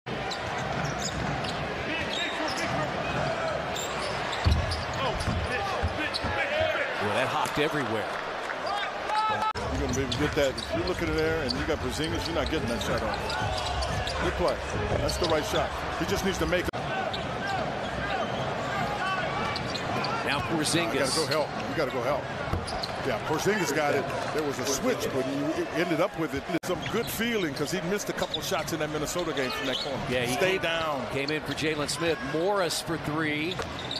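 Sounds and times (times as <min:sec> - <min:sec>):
sneakers squeaking: 0:00.1 - 0:06.8, 0:08.7 - 0:23.2, 0:33.4 - 0:33.9
arena crowd noise: 0:00.1 - 0:33.9.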